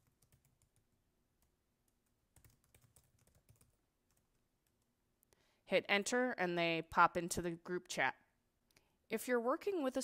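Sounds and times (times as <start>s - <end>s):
typing on computer keyboard: 0.0s - 4.9s.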